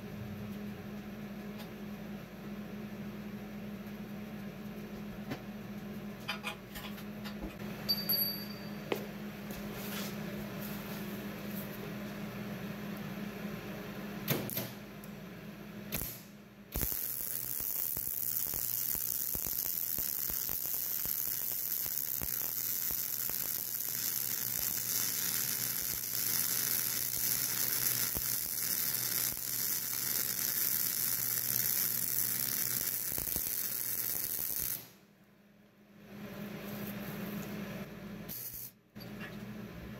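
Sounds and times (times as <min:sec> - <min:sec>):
welding arc crackling sizzle: 0:15.9 - 0:35.0.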